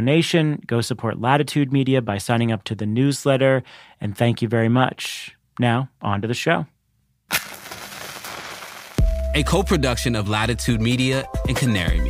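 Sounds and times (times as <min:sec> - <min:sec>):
crackling hiss: 0:07.3 - 0:09.4
sharp crack: 0:07.3 - 0:09.4.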